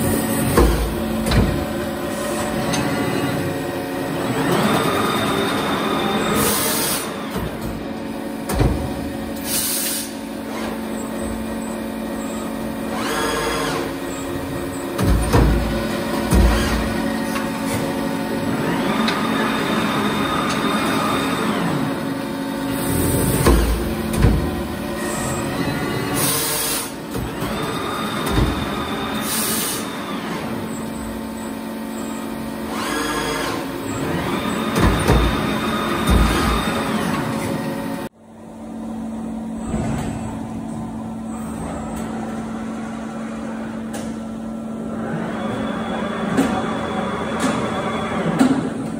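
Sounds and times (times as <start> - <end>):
heavy machine thumps: 0.0 - 1.9, 8.4 - 9.2, 15.0 - 17.1, 22.9 - 24.8, 34.7 - 36.8
machine drive whines: 0.0 - 38.1, 39.3 - 48.9
short air hisses: 9.4 - 10.2.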